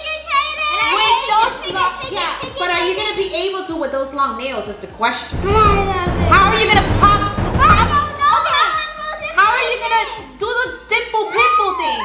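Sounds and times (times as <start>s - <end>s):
background music: 5.3s - 9.2s.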